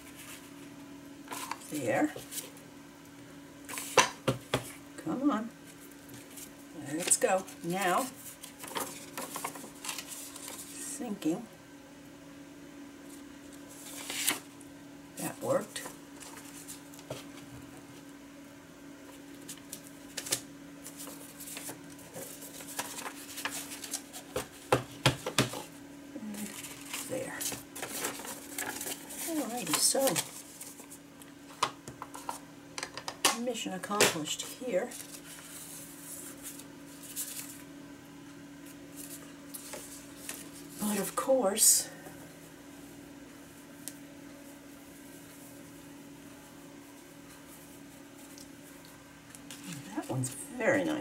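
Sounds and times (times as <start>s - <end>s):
paper rustling and scraping: 0.0s - 0.7s, 1.3s - 2.6s, 3.7s - 4.0s, 5.6s - 10.8s, 13.7s - 14.5s, 15.7s - 17.5s, 19.3s - 25.8s, 26.4s - 31.0s, 34.3s - 37.7s, 38.6s - 41.3s
faint steady hum: 0.0s - 51.0s.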